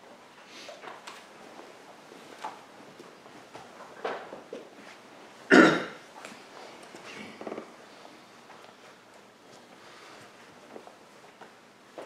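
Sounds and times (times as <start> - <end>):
person coughing: 5.5 - 6.0.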